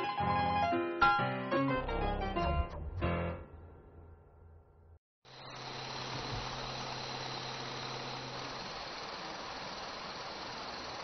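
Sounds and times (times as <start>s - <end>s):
low machine hum: 5.3s - 11.0s.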